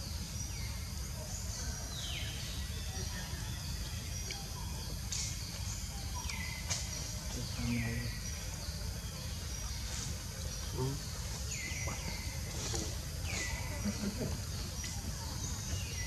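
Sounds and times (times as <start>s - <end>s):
birds calling: 0.0s - 16.0s.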